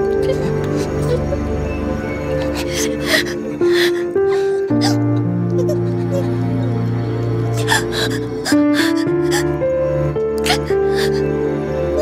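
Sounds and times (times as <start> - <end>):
dramatic sustained score: 0.0 - 12.0.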